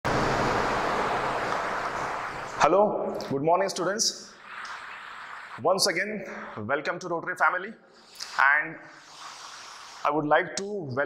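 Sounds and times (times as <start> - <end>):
steady rushing noise: 0.0 - 2.7.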